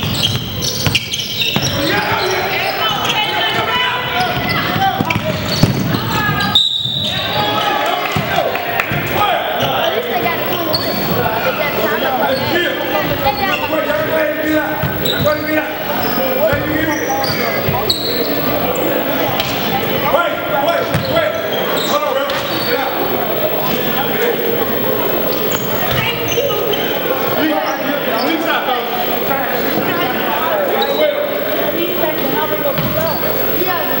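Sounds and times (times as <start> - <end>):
basketball bouncing on court: 0.0 - 2.2, 4.2 - 6.6, 16.4 - 18.2, 20.8 - 21.2, 32.6 - 33.2
sneaker squeaks: 0.0 - 7.8, 8.9 - 34.0
voices of players and spectators: 0.0 - 34.0.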